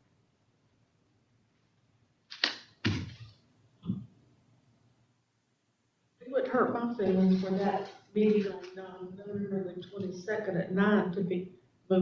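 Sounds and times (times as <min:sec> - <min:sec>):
person speaking: 0:06.2 - 0:12.0.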